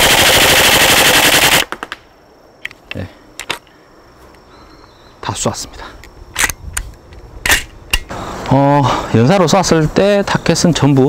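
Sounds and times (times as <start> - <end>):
airsoft rifle firing full auto: 0.0 - 2.0.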